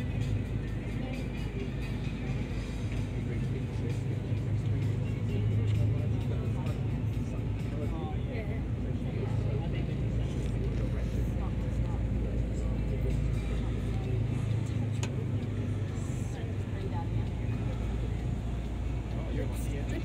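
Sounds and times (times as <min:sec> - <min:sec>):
ferry engines droning: 0:00.0 - 0:20.0.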